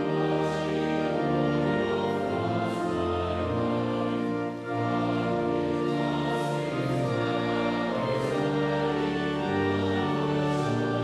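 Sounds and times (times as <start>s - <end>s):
instrumental accompaniment: 0.0s - 11.0s
voices singing a hymn: 0.0s - 11.0s.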